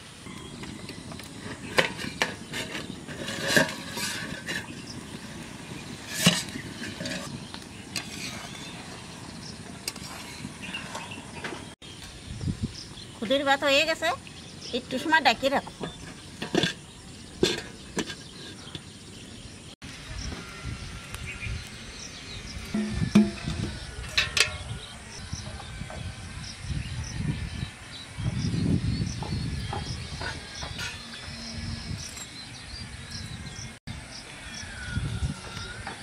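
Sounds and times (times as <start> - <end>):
spoon scraping in ash: 0.8 - 11.4, 16.2 - 19.2, 30.2 - 31.2.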